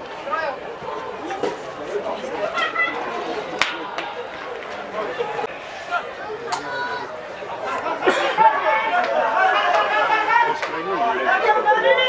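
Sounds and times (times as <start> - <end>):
voices calling and shouting: 0.0 - 12.0.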